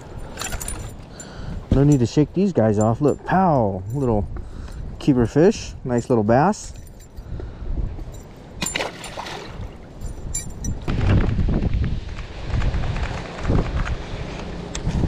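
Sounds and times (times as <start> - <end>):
light metallic clinks: 0.0 - 5.3, 5.9 - 7.4, 8.0 - 10.9
wind buffeting microphone: 0.0 - 15.0.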